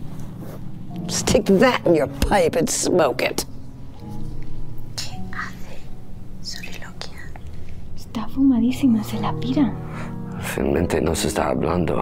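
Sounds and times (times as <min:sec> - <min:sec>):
person whispering: 0:05.0 - 0:05.9.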